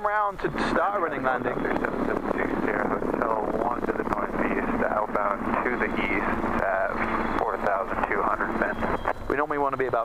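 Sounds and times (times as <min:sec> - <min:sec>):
helicopter noise: 0:00.0 - 0:10.0
person speaking over headset radio: 0:00.4 - 0:10.0.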